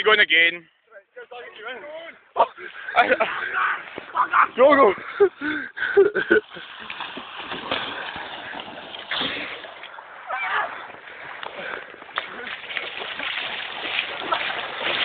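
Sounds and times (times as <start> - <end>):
sea water splashing in shallows: 6.5 - 15.0.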